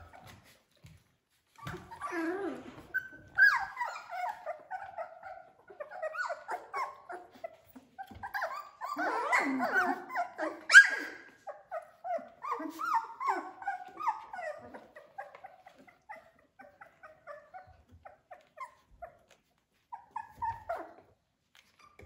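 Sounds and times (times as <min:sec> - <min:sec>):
puppies whining: 0:00.0 - 0:22.0.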